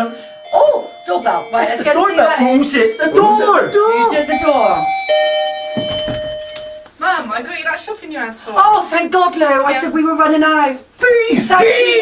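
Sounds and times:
ding-dong door chime: 0.0s - 6.9s.

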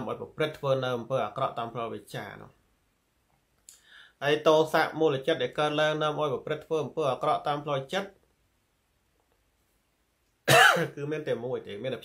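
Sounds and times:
man coughing: 10.5s - 11.0s.

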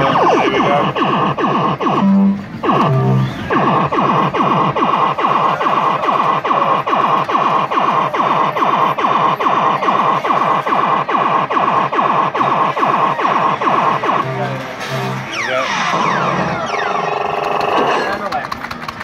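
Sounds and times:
steady high tone: 0.0s - 18.1s
fruit machine falling tones: 13.8s - 17.8s.

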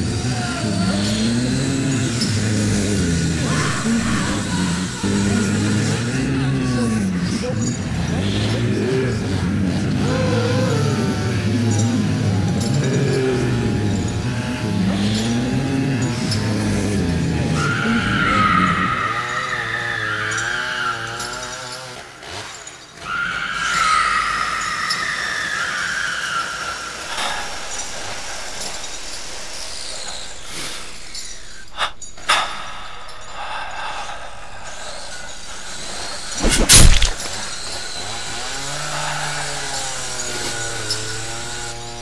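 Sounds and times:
wavering moaning tones: 0.0s - 21.8s, 25.6s - 42.0s
high-pitched screech: 3.4s - 7.0s, 35.0s - 38.8s
low hum: 27.1s - 38.8s.

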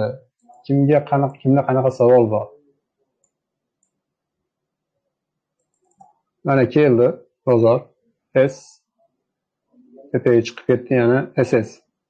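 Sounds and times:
man speaking: 0.0s - 2.6s, 6.5s - 8.8s, 9.9s - 11.8s.

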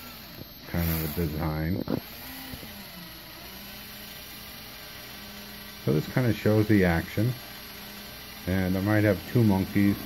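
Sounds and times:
electric drill humming: 0.0s - 10.0s.

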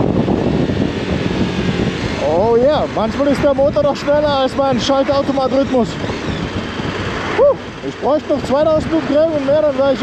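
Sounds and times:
motorcycle road noise: 0.0s - 10.0s
wind rush on microphone: 0.0s - 10.0s.

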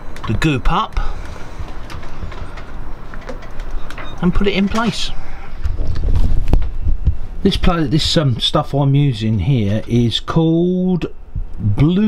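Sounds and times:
low rumble: 5.1s - 9.5s.

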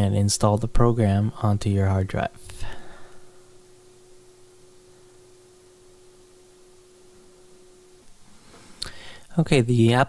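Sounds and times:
thin steady hum: 0.0s - 10.0s
faint hiss: 0.2s - 10.0s.

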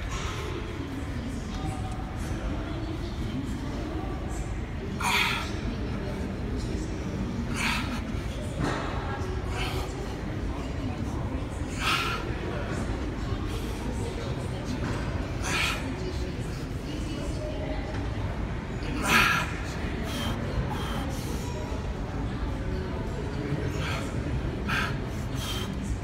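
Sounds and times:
short faint breaths: 11.6s - 12.5s, 19.0s - 21.6s, 23.7s - 26.0s
man breathing hard: 23.7s - 25.8s.

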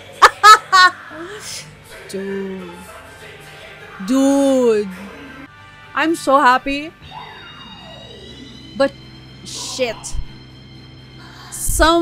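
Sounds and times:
soft background music: 0.0s - 12.0s
faint high rising tones: 7.0s - 11.4s.

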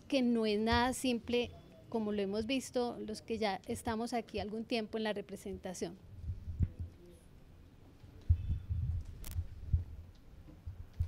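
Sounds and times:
microphone handling thumps: 0.6s - 1.0s, 6.2s - 7.0s, 8.2s - 11.0s
microphone click: 8.2s - 9.9s.

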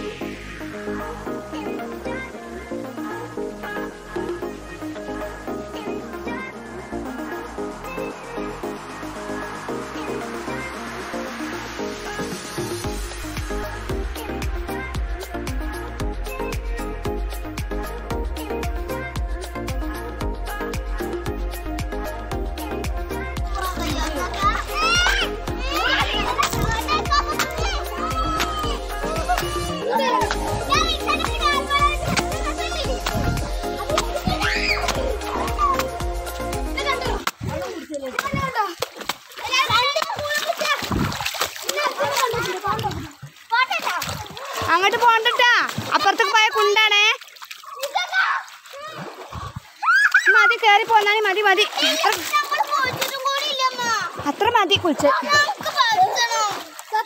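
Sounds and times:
water splashing: 0.0s - 57.0s
music with steady beat: 6.8s - 37.3s
children shouting: 23.4s - 38.8s, 39.4s - 46.8s, 47.6s - 50.6s, 51.7s - 54.2s, 55.0s - 57.0s.

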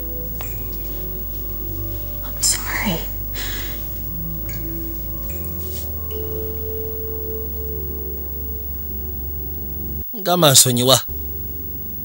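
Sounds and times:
soft music of ringing tones: 0.0s - 12.0s.

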